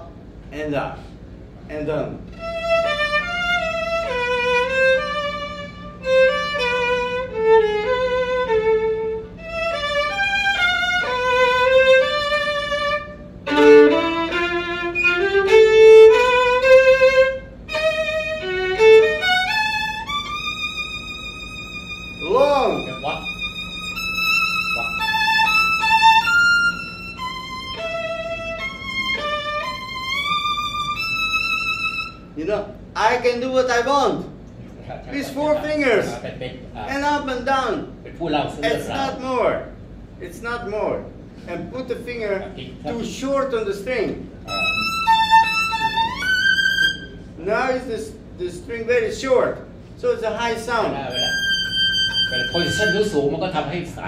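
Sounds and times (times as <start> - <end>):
solo violin melody: 2.3 - 32.3, 44.5 - 47.4, 51.0 - 53.3.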